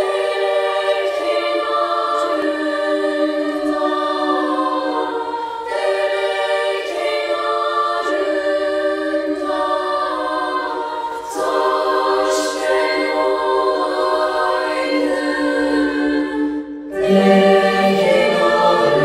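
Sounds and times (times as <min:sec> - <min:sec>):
choir singing in harmony: 0:00.0 - 0:19.0.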